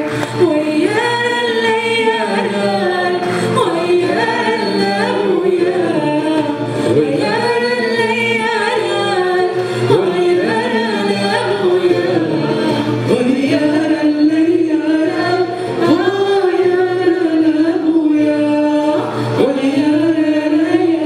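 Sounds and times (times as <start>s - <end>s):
woman singing long gliding notes: 0.0s - 21.0s.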